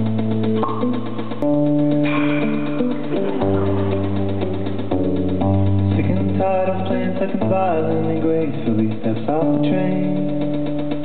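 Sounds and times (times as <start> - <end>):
live band playing guitars: 0.0 - 11.0.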